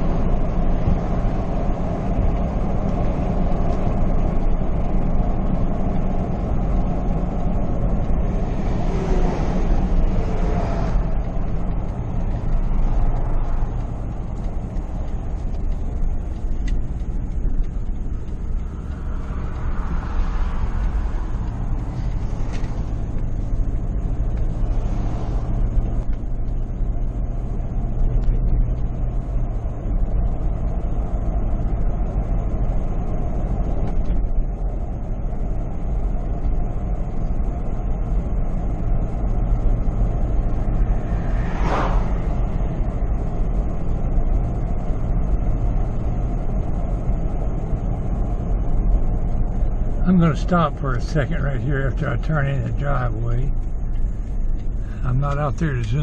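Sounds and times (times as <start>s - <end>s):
truck engine hum: 0.0s - 56.0s
wind and road rumble: 0.0s - 56.0s
brief whoosh: 40.9s - 42.9s.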